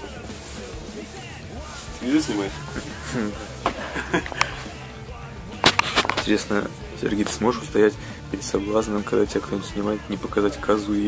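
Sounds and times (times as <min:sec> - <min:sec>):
sharp clicks: 0:05.6 - 0:06.3.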